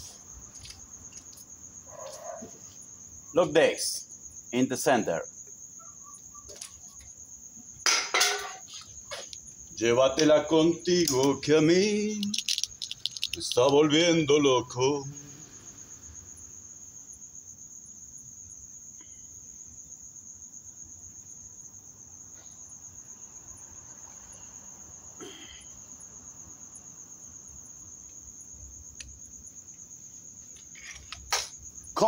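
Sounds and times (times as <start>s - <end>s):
cricket trilling: 0.0s - 32.0s.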